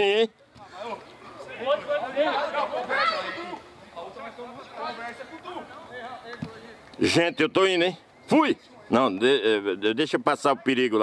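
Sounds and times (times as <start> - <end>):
people shouting and chattering: 0.0 - 11.0.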